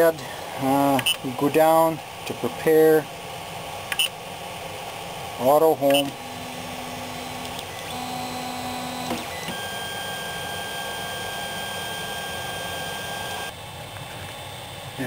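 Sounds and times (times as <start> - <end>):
stepper motors humming: 0.0 - 15.0
stepper motor whine: 5.2 - 15.0.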